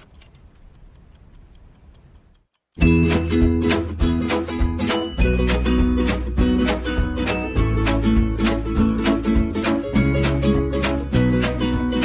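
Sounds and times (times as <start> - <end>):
kitchen timer ticking: 0.0 - 8.0.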